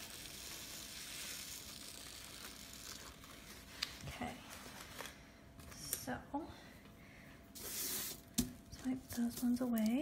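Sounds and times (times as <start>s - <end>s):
sprinkles trickling onto paper: 0.0s - 4.0s.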